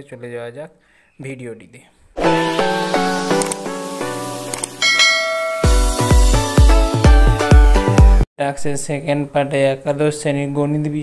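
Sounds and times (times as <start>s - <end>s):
background music: 2.2s - 8.2s
bright bell ding: 4.8s - 6.3s.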